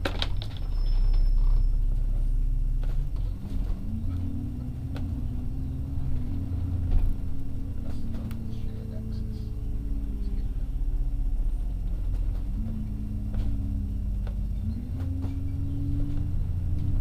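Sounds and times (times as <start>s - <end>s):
bus engine rumble: 0.0s - 17.0s.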